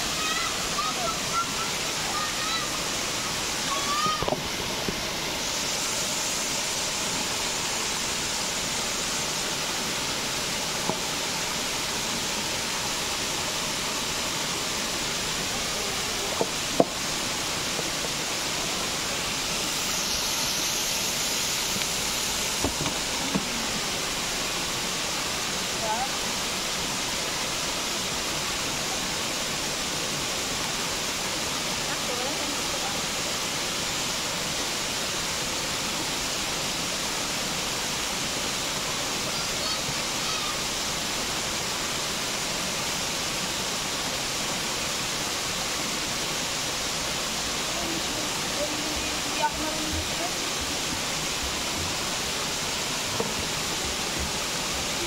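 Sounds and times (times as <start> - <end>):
waterfall rushing over rocks: 0.0 - 55.0.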